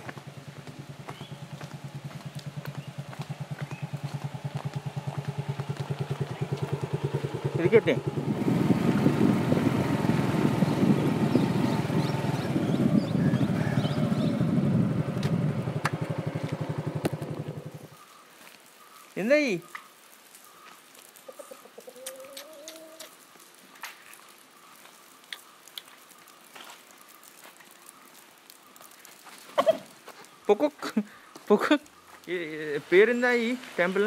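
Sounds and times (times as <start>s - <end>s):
small motorbike engine running: 0.0s - 17.9s.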